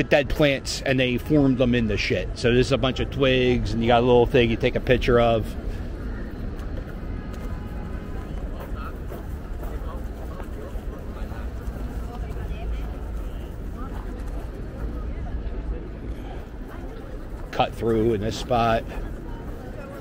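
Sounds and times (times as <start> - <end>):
chatter of people: 0.0 - 20.0
faint music: 0.0 - 20.0.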